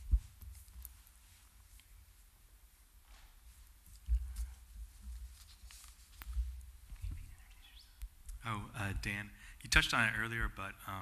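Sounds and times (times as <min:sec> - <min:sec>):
microphone handling rumble and thumps: 0:00.0 - 0:00.6, 0:06.2 - 0:07.4.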